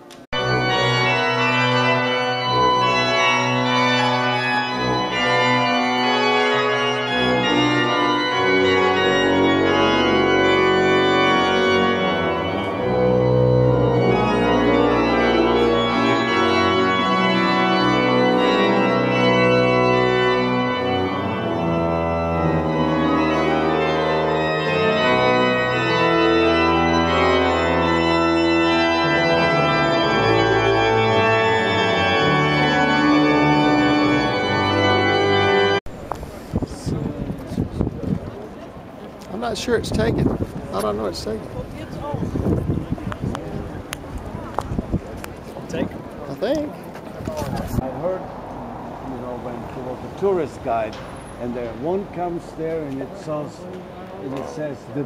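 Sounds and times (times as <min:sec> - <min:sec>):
deep organ pedal bass notes: 0:00.4 - 0:35.8
pipe organ sustained chords: 0:00.4 - 0:35.8.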